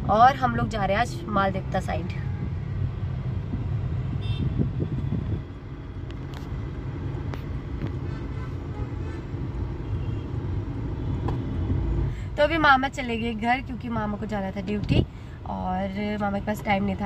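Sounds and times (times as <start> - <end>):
car engine and tyre rumble: 0.0 - 17.0.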